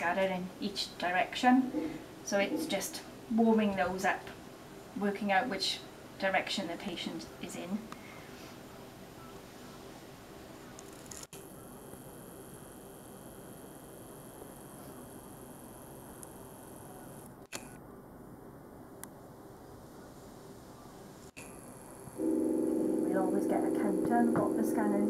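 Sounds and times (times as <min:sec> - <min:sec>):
low room hum: 0:00.0 - 0:25.0
loud electrical buzz: 0:11.0 - 0:17.4, 0:21.4 - 0:25.0.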